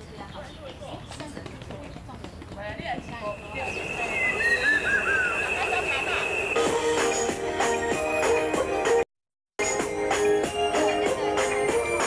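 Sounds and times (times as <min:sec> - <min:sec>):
people talking: 0:00.0 - 0:06.4.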